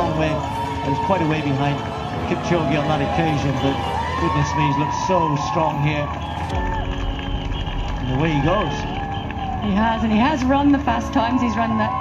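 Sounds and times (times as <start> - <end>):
spectators noise: 0.0 - 12.0.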